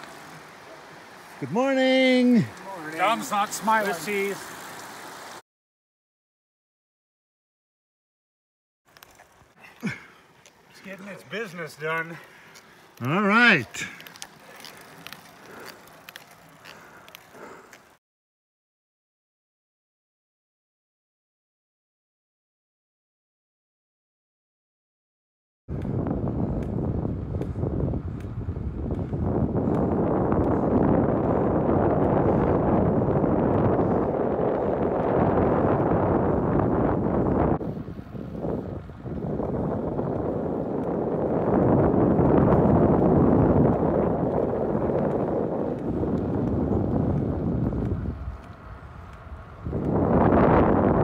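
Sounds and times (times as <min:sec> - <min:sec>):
wind rushing over microphone: 0:25.7 - 0:51.0.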